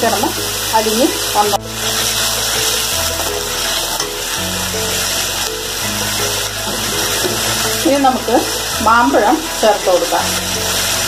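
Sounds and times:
background music with bass notes: 0.0 - 11.0
hot oil sizzling in a pan: 0.0 - 11.0.

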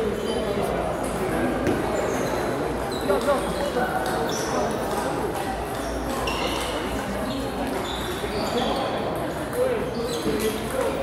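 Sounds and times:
murmur of hall: 0.0 - 11.0.

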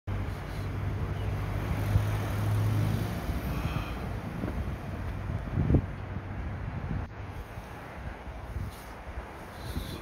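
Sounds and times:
vehicle engine hum: 0.1 - 10.0
wind buffeting microphone: 2.7 - 10.0.

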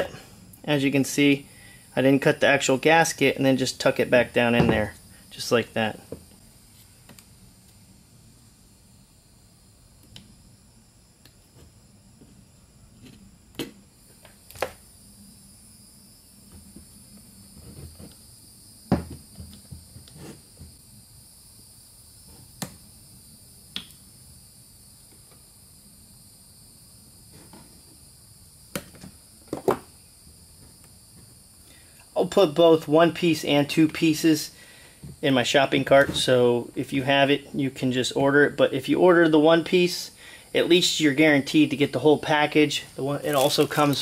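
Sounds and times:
faint steady hiss: 0.0 - 44.0.

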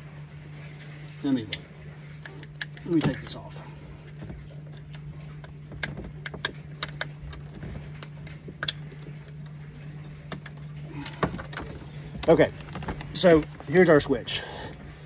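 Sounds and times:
steady low hum: 0.0 - 15.0
wires and connectors rattling: 0.0 - 15.0.

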